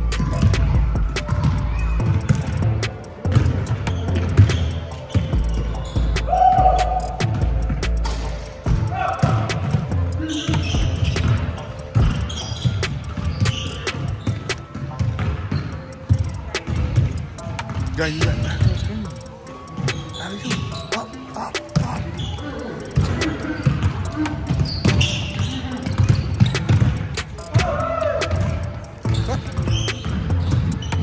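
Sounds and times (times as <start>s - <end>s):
voices echoing in hall: 0.0s - 31.0s
basketball bouncing on hardwood floor: 0.2s - 7.8s, 8.7s - 19.0s, 23.0s - 31.0s.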